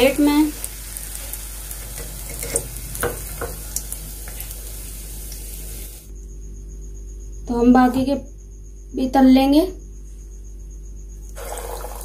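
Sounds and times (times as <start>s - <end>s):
oil sizzling deep-frying: 0.0s - 6.1s, 11.3s - 12.0s.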